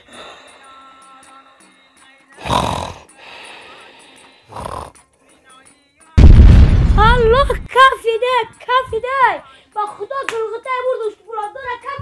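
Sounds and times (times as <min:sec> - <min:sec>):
man snoring: 0:02.4 - 0:05.0
quiet breath: 0:03.1 - 0:04.6.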